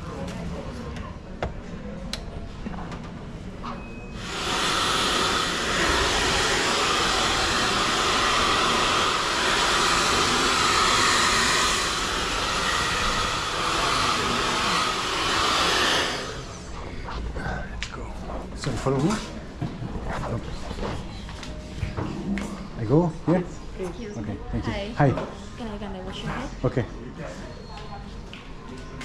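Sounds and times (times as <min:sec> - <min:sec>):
hair dryer blowing: 0:04.2 - 0:16.7.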